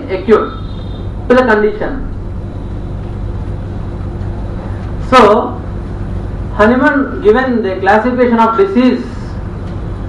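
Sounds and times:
low hum: 0.0 - 7.2.

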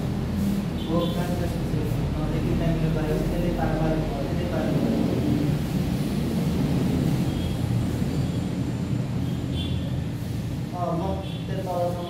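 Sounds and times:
steady low rumbling: 0.0 - 9.2
voice: 0.8 - 5.1, 10.7 - 12.0.

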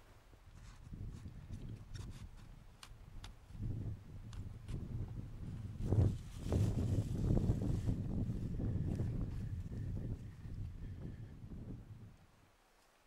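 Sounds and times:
wind buffeting microphone: 0.5 - 12.2.

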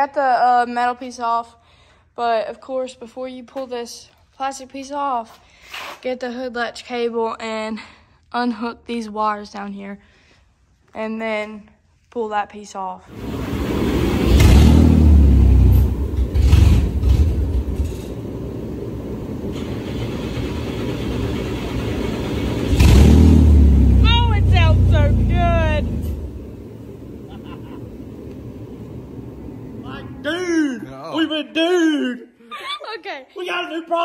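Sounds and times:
car engine revving and idling: 13.1 - 30.6.

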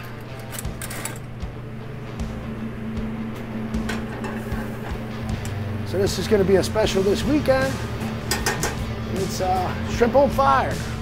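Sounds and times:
kitchen equipment hum: 0.0 - 11.0.

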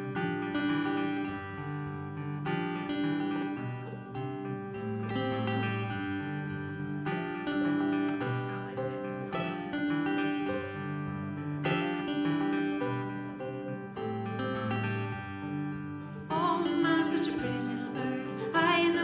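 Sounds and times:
acoustic guitars playing: 0.0 - 19.0
mandolin: 0.0 - 19.0.

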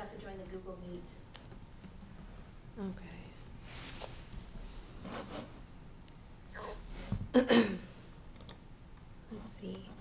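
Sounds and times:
laptop keyboard typing: 8.3 - 8.6.

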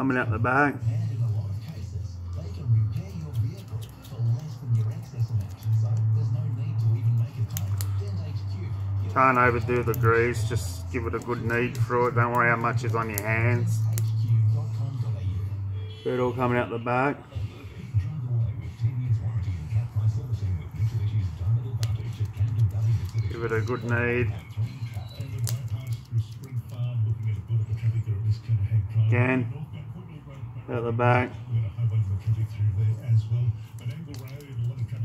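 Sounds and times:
radio playing bass-heavy music: 0.0 - 35.0
hands kneading grease in bearing: 1.6 - 14.3, 21.0 - 27.4.

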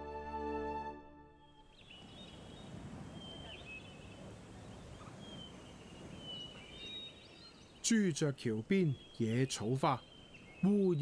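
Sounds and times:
soft music: 0.0 - 1.8.

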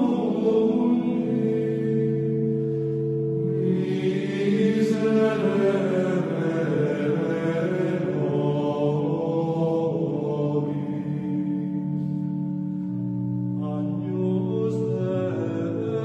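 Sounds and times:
low drone: 0.0 - 16.0
voices chanting long notes: 0.0 - 16.0.

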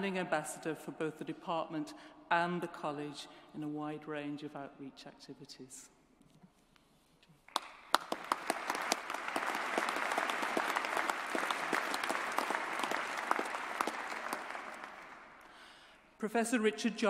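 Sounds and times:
audience applauding: 7.5 - 15.8.

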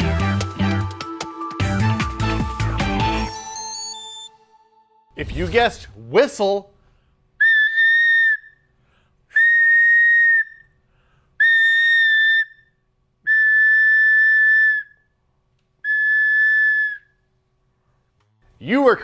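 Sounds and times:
plastic whistle blasts: 7.4 - 8.6, 9.3 - 10.7, 11.4 - 15.1, 15.8 - 17.2.

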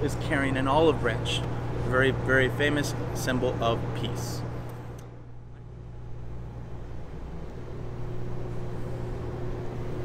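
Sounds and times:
low hum of hall room tone: 0.0 - 10.0.

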